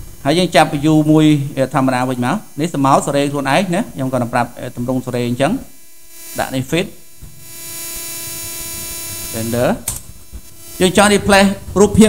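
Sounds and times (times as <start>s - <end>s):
electrical hum: 0.0s - 12.0s
steady hiss: 0.0s - 12.0s.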